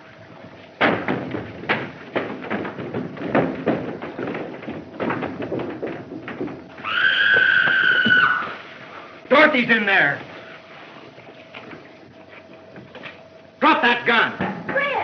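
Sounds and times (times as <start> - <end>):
footsteps on wooden stairs: 0.2 - 13.3.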